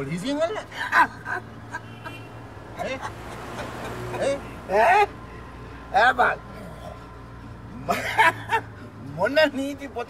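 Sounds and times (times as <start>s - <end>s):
vehicle engine drone: 0.0s - 10.0s
man laughing: 0.5s - 5.2s, 7.8s - 8.8s.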